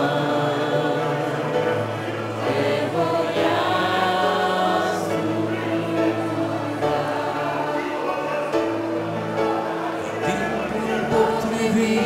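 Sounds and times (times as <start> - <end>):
mixed choir singing a hymn: 0.0 - 12.0.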